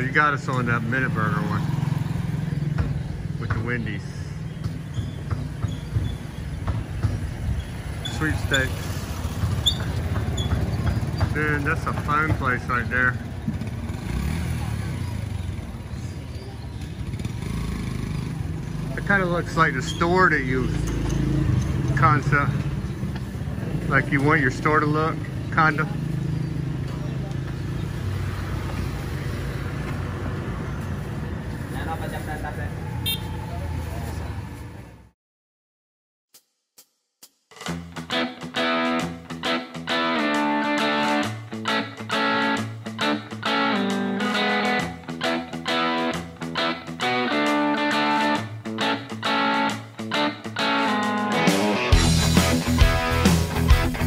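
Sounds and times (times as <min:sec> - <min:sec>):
motor vehicle engine rumbling: 0:00.0 - 0:35.1
street traffic: 0:00.0 - 0:35.2, 0:37.6 - 0:54.0.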